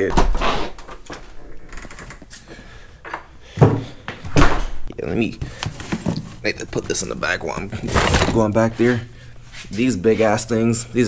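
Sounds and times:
door clicks and knocks: 3.7 - 4.9.

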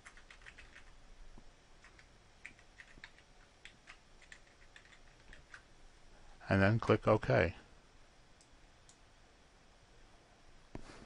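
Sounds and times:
typing on a keyboard: 0.0 - 0.9, 1.8 - 5.6.

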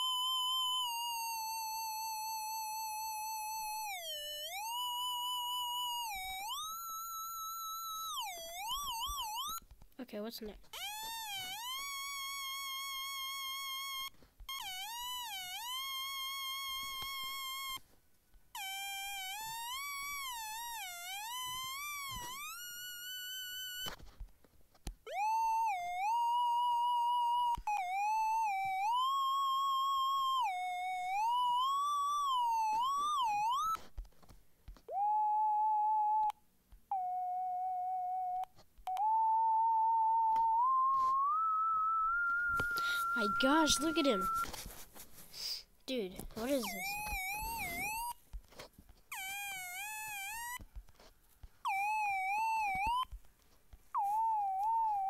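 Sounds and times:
swooping high synth tone: 0.0 - 9.6, 25.1 - 33.8, 36.9 - 44.7, 46.4 - 48.2, 51.7 - 53.1, 54.0 - 55.0.

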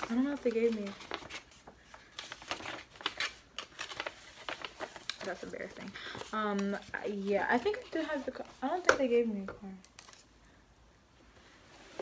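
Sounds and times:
paper rustling and crinkling: 0.0 - 9.2, 9.8 - 10.3.

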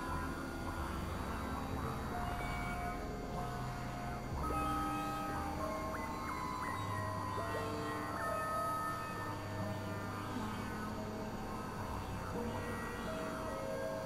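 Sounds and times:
synthesizer drone tones: 0.0 - 14.0.

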